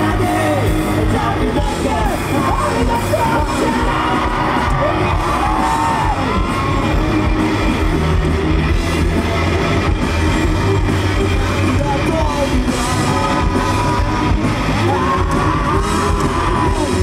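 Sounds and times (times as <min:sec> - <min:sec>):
live rock band playing: 0:00.0 - 0:17.0
person shouted singing: 0:11.6 - 0:17.0.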